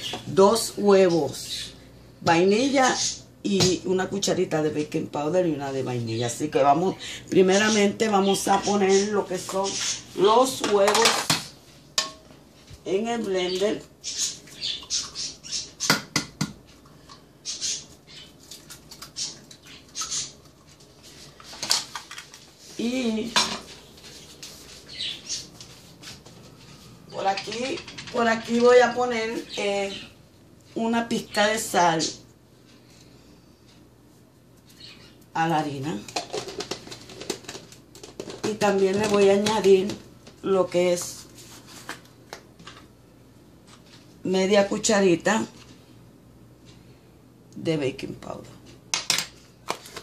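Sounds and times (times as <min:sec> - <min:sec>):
kitchen items clicking on counter: 0:36.1 - 0:40.0.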